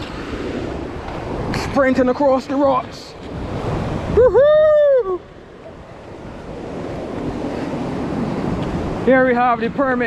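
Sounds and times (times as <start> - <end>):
ocean surf washing ashore: 0.0 - 10.0
wind buffeting microphone: 0.0 - 10.0
person shouting: 4.2 - 5.2.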